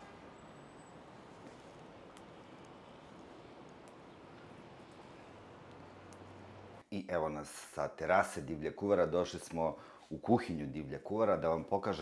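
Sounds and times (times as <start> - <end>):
distant traffic hum: 0.0 - 6.8
faint clicks: 1.5 - 6.5.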